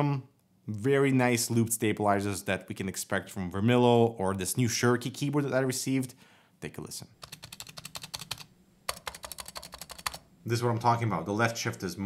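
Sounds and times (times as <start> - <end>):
keyboard keystrokes: 7.2 - 10.2.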